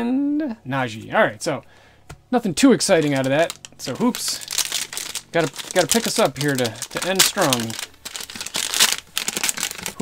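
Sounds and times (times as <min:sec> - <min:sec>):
foil wrapper tearing and crinkling: 0:02.8 - 0:10.0.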